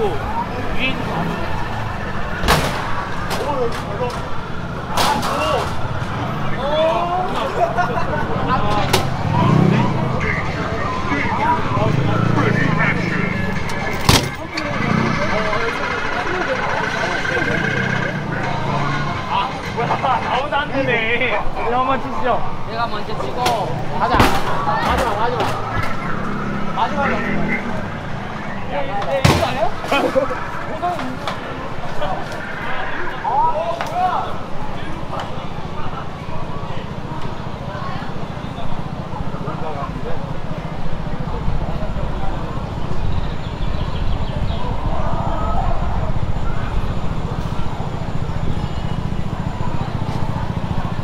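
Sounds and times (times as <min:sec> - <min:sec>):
people talking nearby: 0:00.0 - 0:51.0
street noise: 0:00.0 - 0:51.0
vehicle rumbling by: 0:00.0 - 0:51.0
loud sharp bang: 0:02.4 - 0:03.5.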